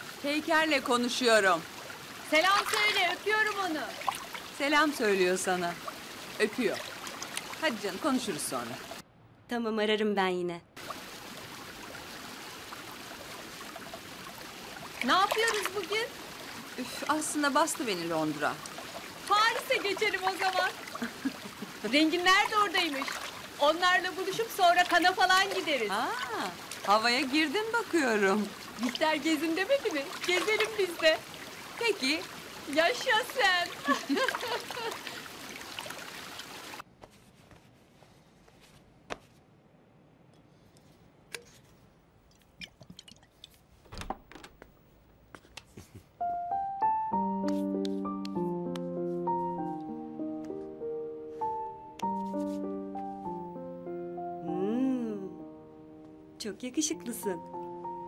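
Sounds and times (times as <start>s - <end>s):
jacuzzi jets bubbling water: 0.0s - 9.0s, 10.8s - 36.8s.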